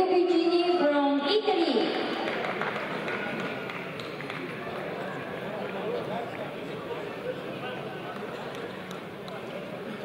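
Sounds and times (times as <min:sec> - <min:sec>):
hall background noise: 0:00.0 - 0:10.0
man speaking over public address: 0:05.1 - 0:10.0.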